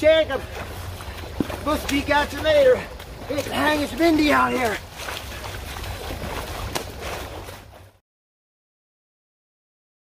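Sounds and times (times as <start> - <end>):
boots splashing through stream: 0.0 - 8.0.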